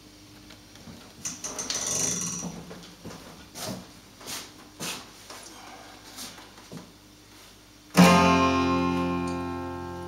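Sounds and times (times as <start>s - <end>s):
faint low amplifier hum: 0.0s - 10.0s.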